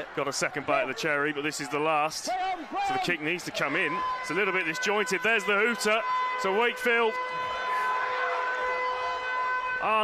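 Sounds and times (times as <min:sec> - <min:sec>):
crowd noise: 0:00.0 - 0:10.0
stadium hooter long note: 0:03.8 - 0:10.0.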